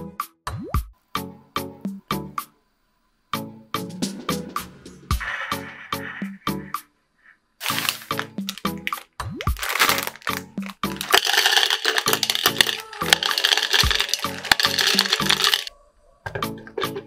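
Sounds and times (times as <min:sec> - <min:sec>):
background music with steady beat: 0:00.0 - 0:02.5, 0:03.3 - 0:06.9
chocolate balls rattling into plastic bowl: 0:07.6 - 0:15.7.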